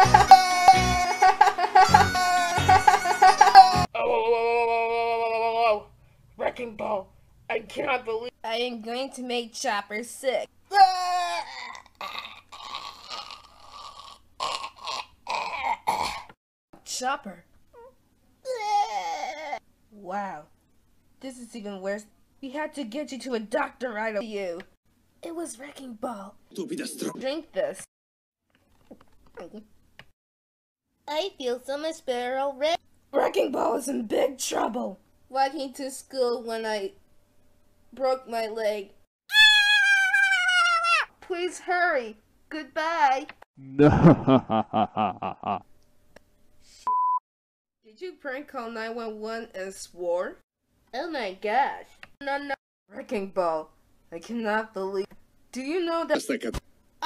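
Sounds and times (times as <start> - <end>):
high-pitched cartoon cry: 0.0 - 5.8, 10.7 - 12.6, 39.3 - 41.1
cartoon retching cry: 11.4 - 16.3, 26.6 - 27.2, 43.6 - 45.6.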